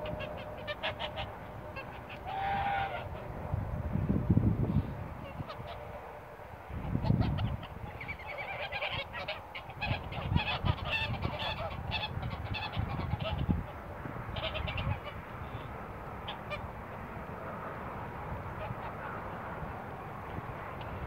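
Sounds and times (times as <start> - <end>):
geese honking: 0.0 - 3.4, 5.2 - 16.8, 18.4 - 19.4.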